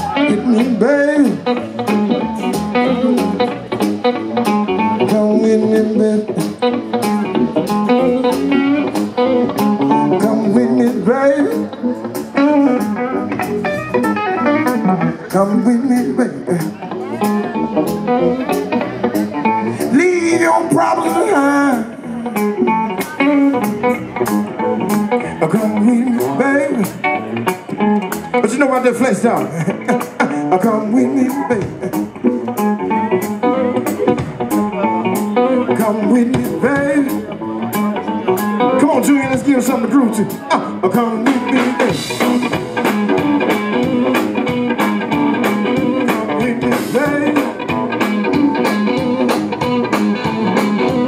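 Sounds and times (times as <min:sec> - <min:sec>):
person singing: 0:00.0 - 0:03.6, 0:04.8 - 0:08.9, 0:09.8 - 0:13.4, 0:14.5 - 0:18.9, 0:19.5 - 0:27.0, 0:28.7 - 0:51.0
electric guitar riff: 0:00.0 - 0:51.0
live blues band: 0:00.0 - 0:51.0
steady drum beat: 0:31.4 - 0:37.2, 0:40.8 - 0:51.0.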